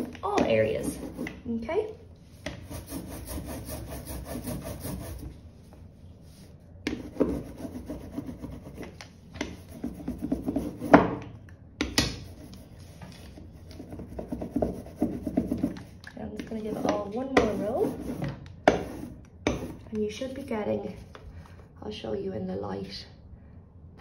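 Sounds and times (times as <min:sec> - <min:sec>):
rubber roller on inked block: 0:02.4 - 0:05.4, 0:06.9 - 0:11.2, 0:12.2 - 0:19.9.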